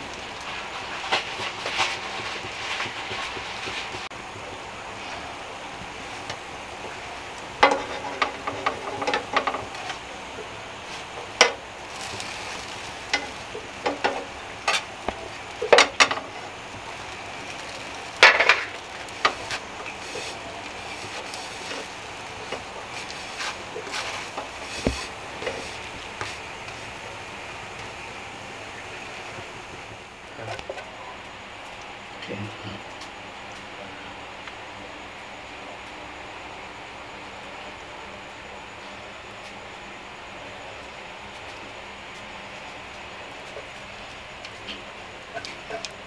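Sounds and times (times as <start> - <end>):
faint sizzle: 0.0 - 46.0.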